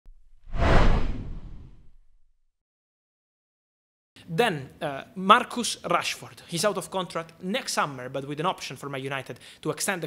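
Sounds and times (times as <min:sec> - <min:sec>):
deep rumble: 0:00.1 - 0:02.2
noisy whoosh: 0:00.1 - 0:02.3.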